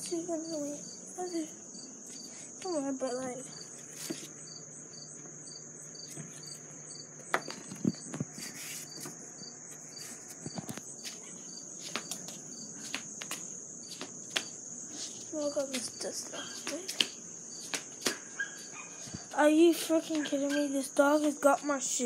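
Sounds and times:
high-pitched insect trill: 0.0 - 22.0.

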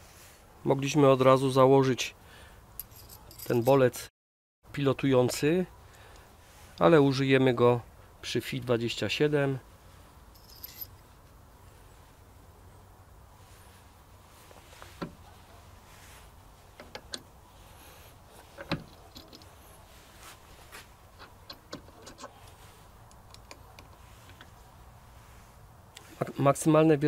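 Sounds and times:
metallic clicks and taps: 23.0 - 24.5.

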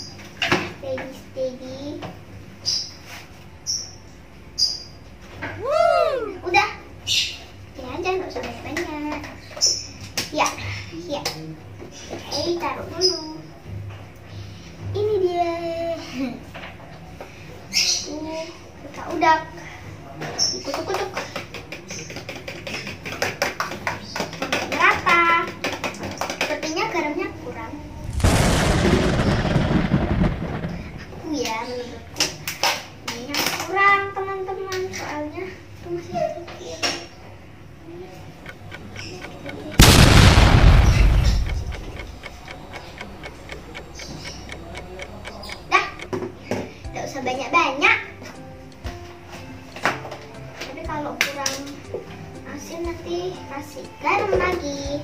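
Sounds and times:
loud rushes of noise: 27.8 - 31.2.

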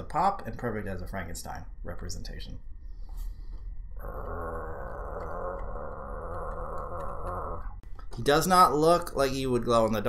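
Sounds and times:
speech: 0.0 - 2.6, 8.2 - 10.0
deep growling groan: 4.0 - 7.8.

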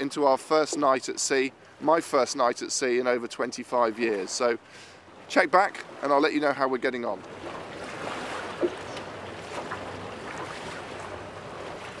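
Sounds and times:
water washing along boat hull: 0.0 - 12.0.

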